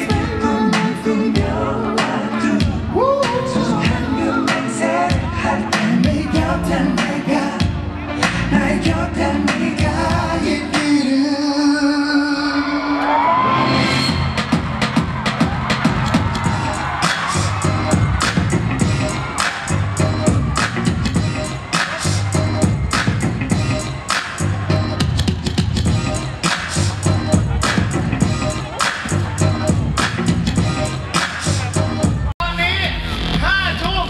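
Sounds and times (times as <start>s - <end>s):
dance track with percussion: 13.9s - 32.3s.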